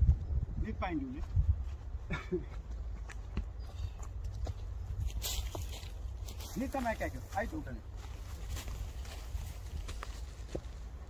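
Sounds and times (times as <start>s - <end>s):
wind rumble on microphone: 0.0s - 2.4s, 8.1s - 11.0s
footsteps on leaves: 3.0s - 11.0s.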